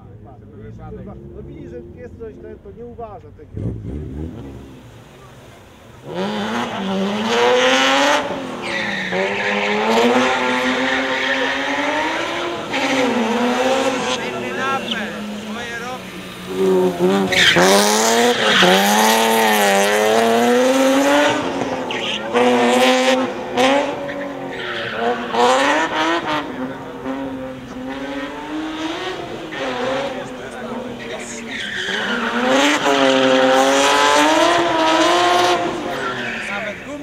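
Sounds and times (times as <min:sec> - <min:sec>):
car engine revving: 0:00.0 - 0:37.0
tyres squealing: 0:03.6 - 0:37.0.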